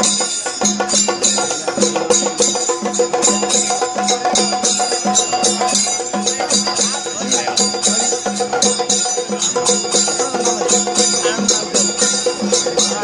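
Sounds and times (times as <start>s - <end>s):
drums and cymbals ensemble: 0.0s - 13.0s.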